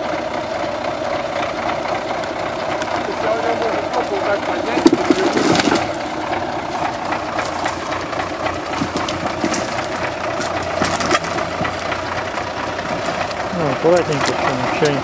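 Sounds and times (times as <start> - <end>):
truck engine running: 0.0 - 15.0
wheels knocking on wood: 0.0 - 15.0.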